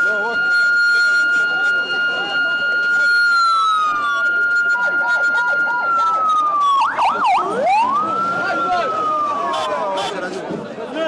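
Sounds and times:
ambulance siren wailing: 0.0 - 10.2.

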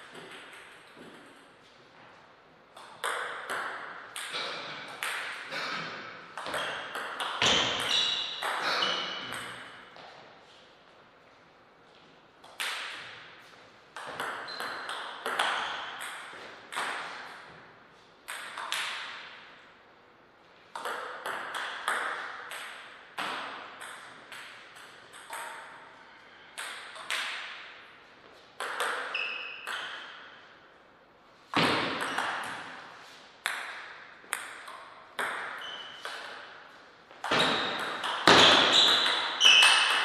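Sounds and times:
shoes squeaking: 7.4 - 10.1, 35.6 - 36.3, 37.2 - 40.0.

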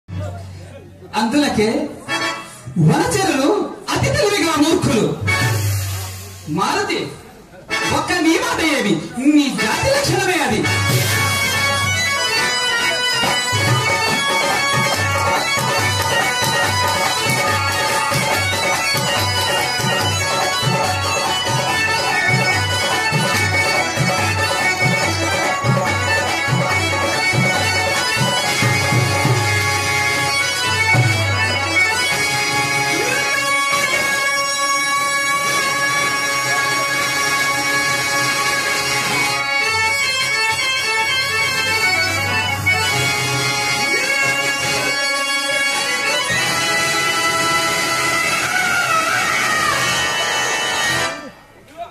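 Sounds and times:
harmonium droning melody: 0.1 - 6.2, 7.1 - 51.4.

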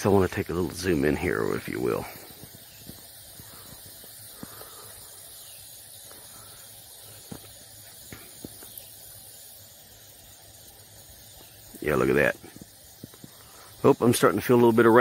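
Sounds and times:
faint outdoor hiss: 0.0 - 15.0.

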